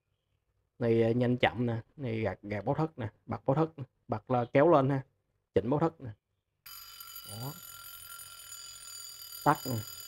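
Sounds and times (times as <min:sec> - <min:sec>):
wristwatch alarm buzzing: 0:06.7 - 0:10.0.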